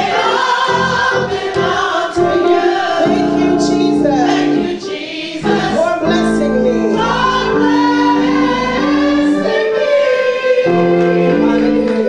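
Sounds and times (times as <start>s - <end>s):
gospel choir singing: 0.0s - 12.0s
held accompaniment chords: 0.0s - 12.0s.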